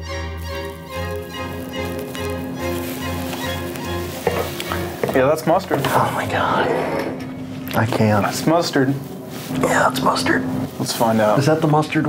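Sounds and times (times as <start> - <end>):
instrumental music with beat: 0.0 - 5.4.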